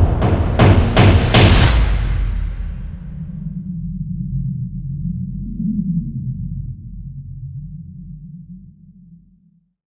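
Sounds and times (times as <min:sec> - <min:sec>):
deep low drone: 0:00.0 - 0:09.8.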